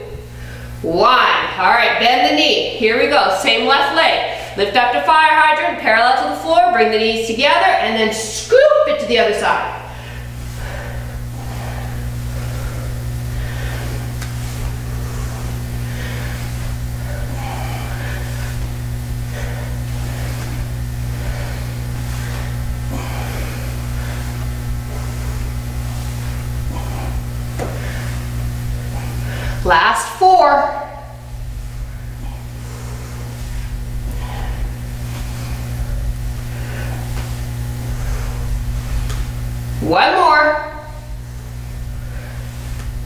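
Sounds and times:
low hum: 0.0 - 43.0.

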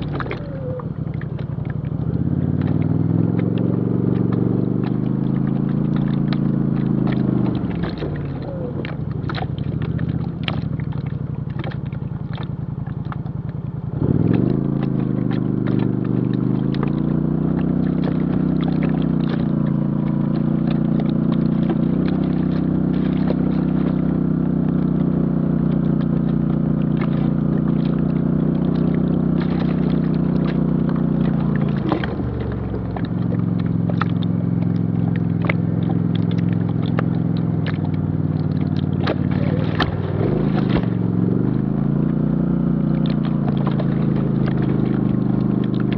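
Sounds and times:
off-road vehicle engine revving: 0.0 - 45.9.

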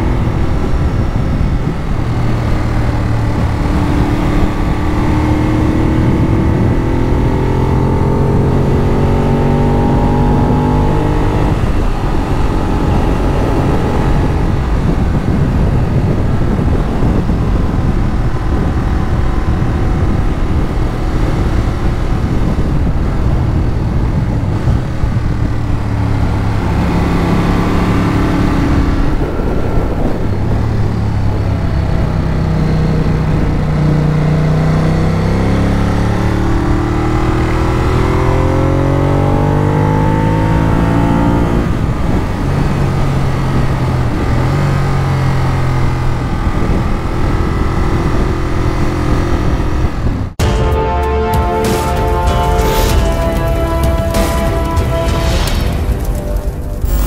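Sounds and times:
motorcycle engine running: 0.0 - 34.5
wind noise on microphone: 0.0 - 57.0.

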